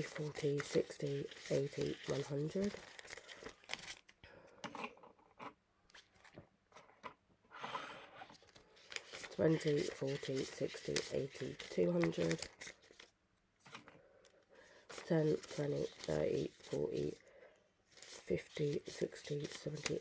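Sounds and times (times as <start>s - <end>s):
banknotes rustling: 0.0s - 4.1s, 8.3s - 13.1s, 14.6s - 17.2s, 17.9s - 20.0s.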